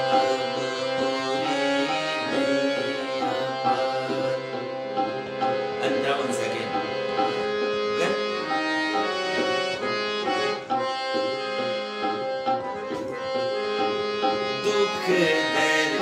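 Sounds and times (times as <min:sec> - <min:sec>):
harmonium melody over drone: 0:00.0 - 0:16.0.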